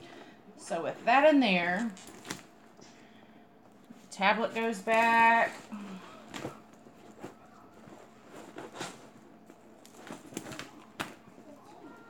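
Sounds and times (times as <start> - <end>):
items rustling and knocking in handbag: 0.0 - 2.7, 3.7 - 12.0.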